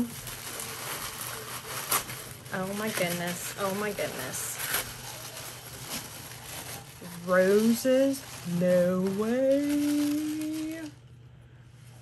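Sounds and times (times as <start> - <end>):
faint crackles: 0.0 - 11.1
paper and packaging rustling: 0.0 - 11.1.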